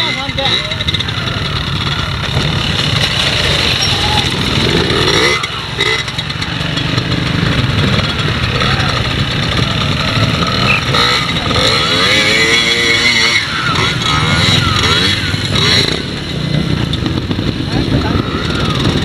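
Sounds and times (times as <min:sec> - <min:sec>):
trials motorcycle revving: 0:00.0 - 0:19.0.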